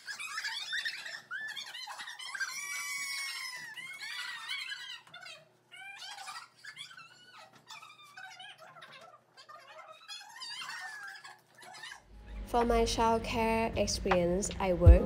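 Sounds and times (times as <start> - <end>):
girls squealing and shrieking: 0.0 - 12.1.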